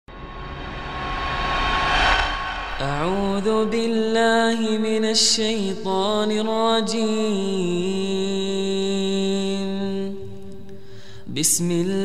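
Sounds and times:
low hum: 0.0s - 4.8s
whoosh-like swell of noise: 0.1s - 4.8s.

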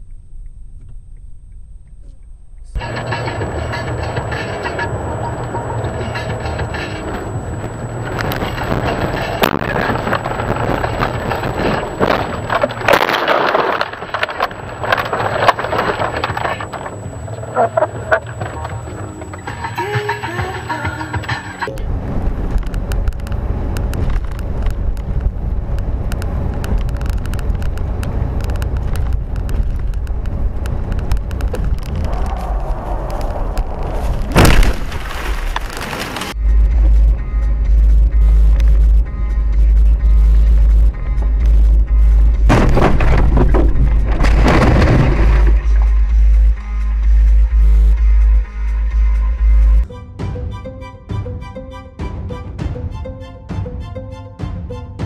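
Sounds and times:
car engine and road noise: 0.0s - 49.9s
heavy low rumble with clicks: 0.0s - 49.9s
music playing in car: 2.7s - 12.6s, 16.1s - 21.7s
loud knocks: 42.5s - 45.6s.

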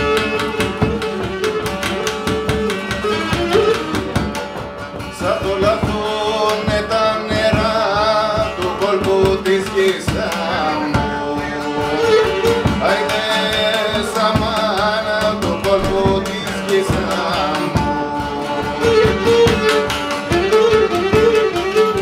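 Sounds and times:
drum beating dance rhythm: 0.0s - 22.0s
lute strumming chords: 0.0s - 22.0s
man singing: 5.1s - 22.0s.

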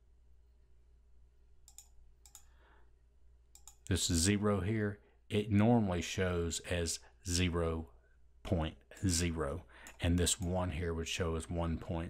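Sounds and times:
computer mouse clicks: 1.6s - 2.5s, 3.5s - 3.9s.

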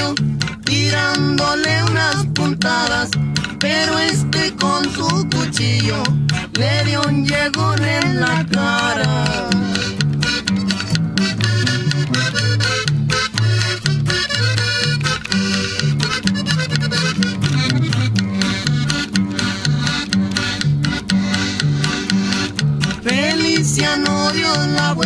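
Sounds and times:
accordion playing melody: 0.0s - 25.0s
bass line: 0.0s - 25.0s.

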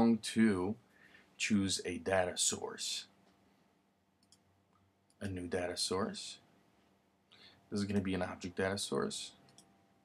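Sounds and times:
computer mouse clicks: 4.2s - 5.2s, 9.4s - 9.7s.

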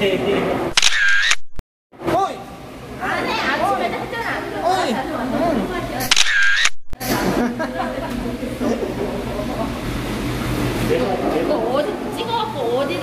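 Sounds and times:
camera shutter sound effect: 0.7s - 1.6s, 6.0s - 6.8s.

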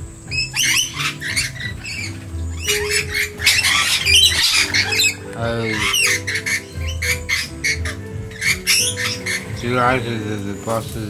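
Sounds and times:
parrots screeching: 0.0s - 10.8s
background music: 0.0s - 11.0s.

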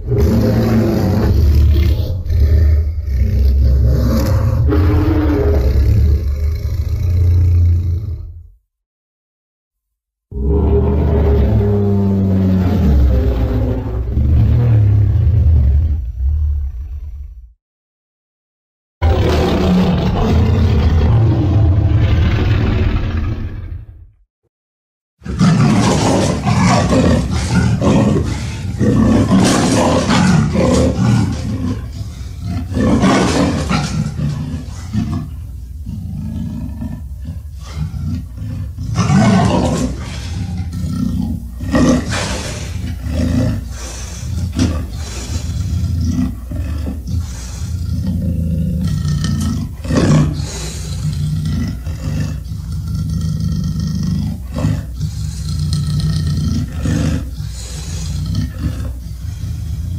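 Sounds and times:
deep roars and growls: 0.0s - 8.6s, 10.3s - 17.6s, 19.0s - 24.2s, 25.2s - 59.9s.

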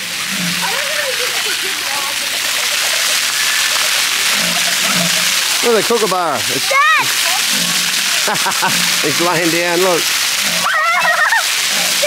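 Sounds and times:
fountain jets spraying water: 0.0s - 12.0s.

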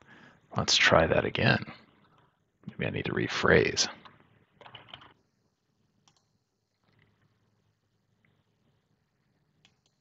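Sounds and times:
computer keyboard typing: 4.0s - 5.2s.

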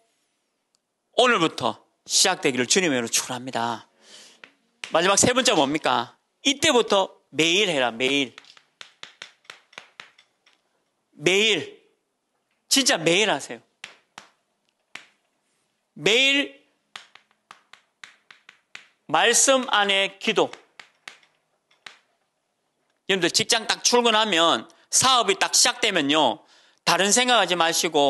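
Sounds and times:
chalk tapping on chalkboard: 4.4s - 5.7s, 7.8s - 10.6s, 13.8s - 15.3s, 16.9s - 22.1s.

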